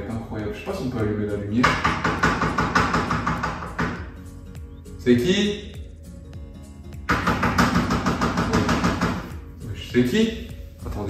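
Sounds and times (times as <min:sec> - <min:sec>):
fast knocking on a door: 0:01.6 - 0:04.1, 0:07.1 - 0:09.4.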